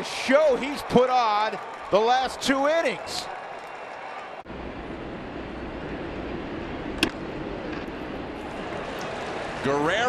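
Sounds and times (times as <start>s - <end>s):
ballpark crowd: 0.0s - 4.5s, 8.4s - 10.0s.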